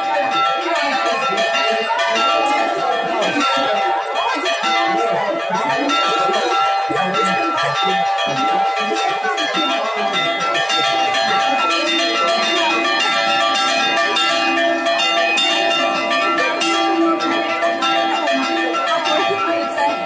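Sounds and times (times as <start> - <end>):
church bells ringing: 0.0 - 20.0.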